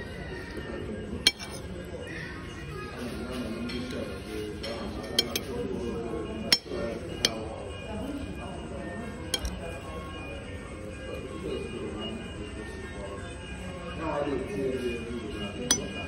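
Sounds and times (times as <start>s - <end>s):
metal spoon clinking on ceramic plate: 1.3s - 1.7s, 4.6s - 5.6s, 6.5s - 7.4s, 9.4s - 9.6s, 15.7s - 16.0s.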